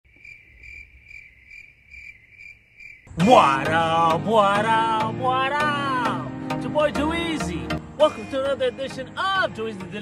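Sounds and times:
cricket chirping: 0:00.1 - 0:03.2.

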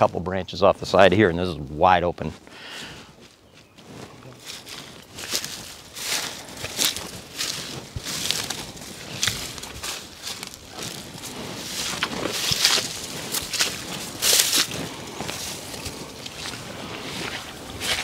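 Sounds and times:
footsteps through grass and brush: 0:00.0 - 0:18.0.

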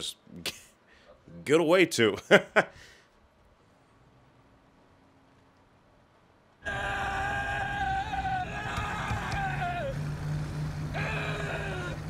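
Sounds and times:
man screaming: 0:06.6 - 0:10.1, 0:10.9 - 0:12.0
car engine drone: 0:06.7 - 0:12.0.

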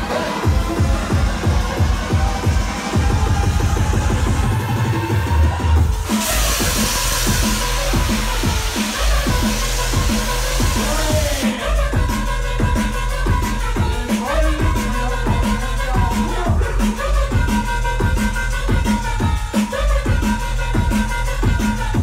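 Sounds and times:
electronic bass music: 0:00.0 - 0:22.0
bright high hiss: 0:06.0 - 0:11.8.

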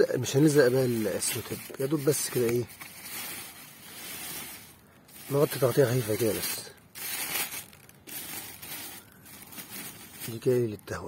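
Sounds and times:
plastic bag crinkling: 0:00.0 - 0:10.9.

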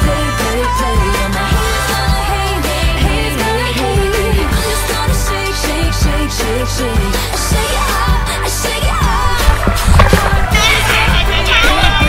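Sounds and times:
pop song with strong bass: 0:00.0 - 0:12.0.

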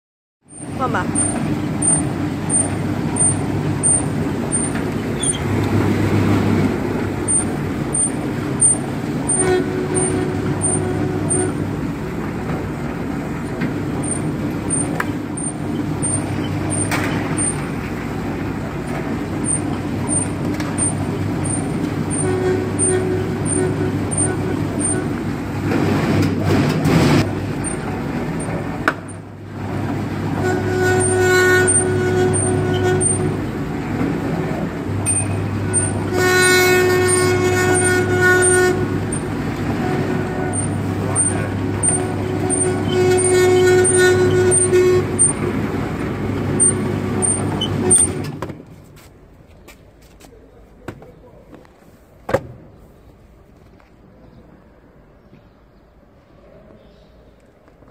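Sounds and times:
dough sheeter motor humming: 0:00.5 - 0:48.4.

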